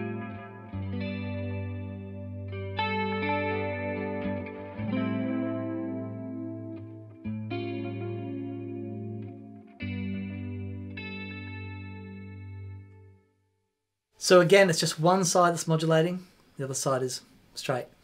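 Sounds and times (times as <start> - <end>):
electric guitar chords: 0.0 - 13.3.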